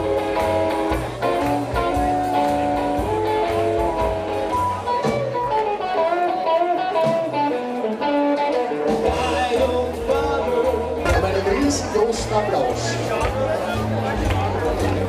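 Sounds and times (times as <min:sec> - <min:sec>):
steady drum beat: 0:00.0 - 0:05.7, 0:08.8 - 0:15.0
electric guitar lines: 0:00.0 - 0:15.0.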